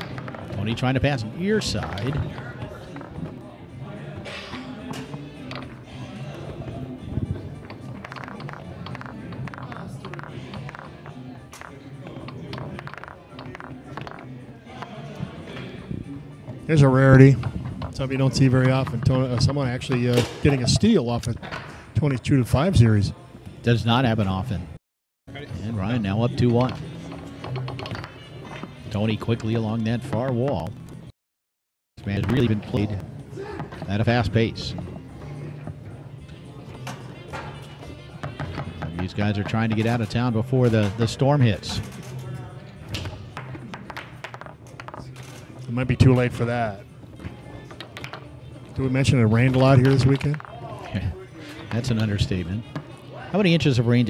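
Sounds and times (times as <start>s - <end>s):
faint voices: 0.0s - 21.2s
background music: 0.0s - 31.1s, 32.0s - 54.0s
foosball clacks and knocks: 7.6s - 14.9s, 43.0s - 46.2s, 47.7s - 48.2s.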